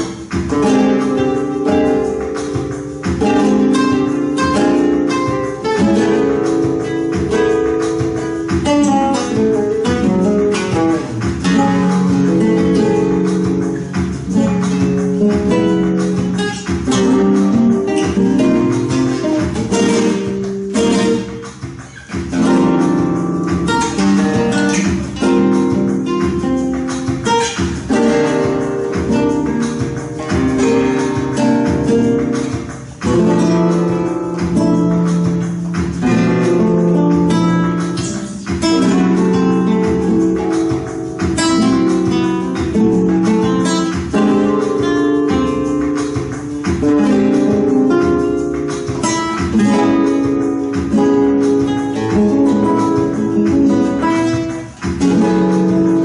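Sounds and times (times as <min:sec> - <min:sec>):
flamenco guitars playing: 0:00.0 - 0:56.0.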